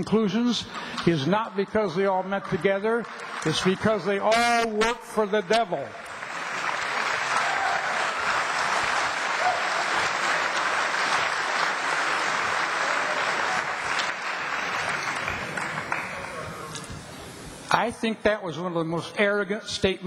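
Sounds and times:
audience applauding: 2.3s - 4.8s, 6.0s - 16.8s.

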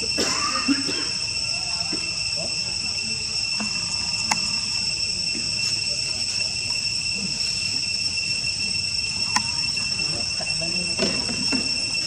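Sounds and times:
shrill insect chorus: 0.0s - 12.0s.

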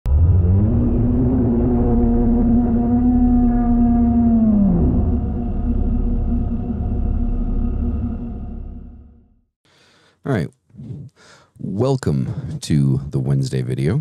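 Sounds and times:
deep rumbling drone: 0.0s - 9.6s
held pitched tone sliding down: 0.1s - 9.2s.

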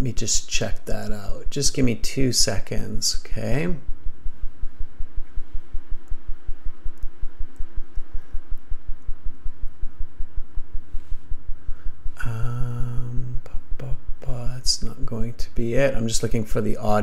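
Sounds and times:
faint steady hum: 0.0s - 17.0s
low throbbing pulse: 0.0s - 17.0s
faint clicks: 6.9s - 9.2s.

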